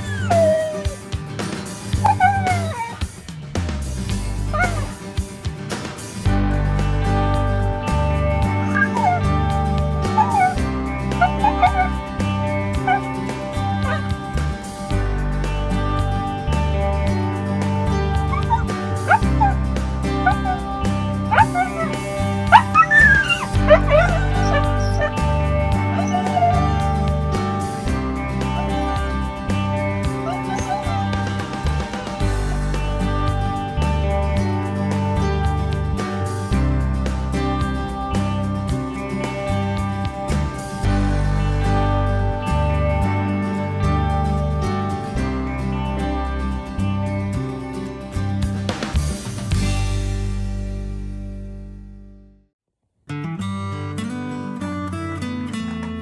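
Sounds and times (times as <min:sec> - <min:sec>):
dog whining: 0:00.0 - 0:01.1, 0:02.0 - 0:03.1, 0:04.5 - 0:05.0, 0:08.5 - 0:09.3, 0:10.1 - 0:12.0, 0:12.8 - 0:13.1, 0:13.8 - 0:14.1, 0:18.3 - 0:19.6, 0:20.2 - 0:20.7, 0:21.3 - 0:27.0, 0:30.2 - 0:31.3
music: 0:00.0 - 0:52.5, 0:53.1 - 0:56.0.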